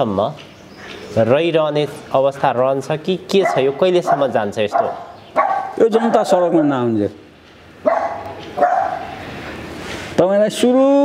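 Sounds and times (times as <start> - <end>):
dog barking: 3.4 - 6.8, 7.8 - 9.2.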